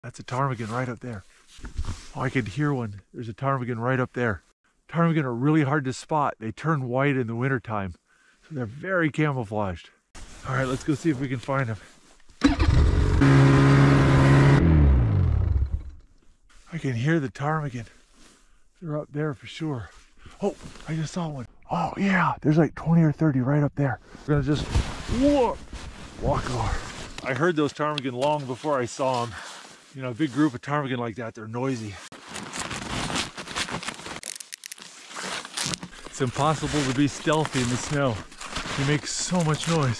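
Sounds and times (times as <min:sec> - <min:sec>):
engine running loudly: 0:12.6 - 0:15.9
snowshoes crunching on snow: 0:36.2 - 0:39.9.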